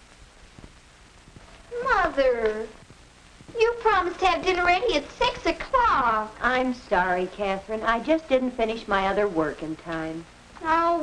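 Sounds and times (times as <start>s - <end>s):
soundtrack hiss: 0.0s - 11.0s.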